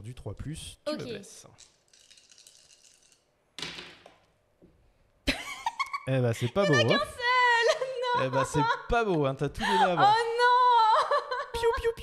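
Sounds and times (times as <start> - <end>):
dice clattering on a table: 1.6 - 4.2.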